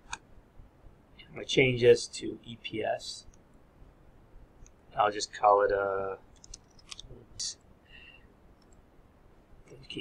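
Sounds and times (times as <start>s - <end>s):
mouse and keyboard clicks: 6.3s - 7.2s.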